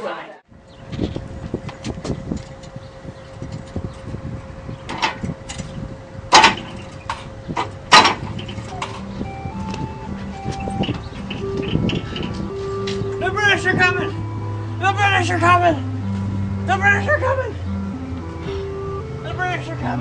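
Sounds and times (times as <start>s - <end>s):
electronic ride tune: 0.5s - 20.0s
steady hum: 0.5s - 20.0s
knocks and clunks: 4.8s - 13.4s.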